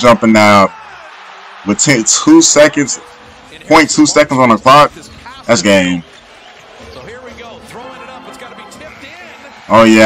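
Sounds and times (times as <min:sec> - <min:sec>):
commentator talking: 0:00.0 - 0:00.7, 0:01.6 - 0:06.0, 0:06.8 - 0:10.0
arena crowd noise: 0:00.0 - 0:10.0.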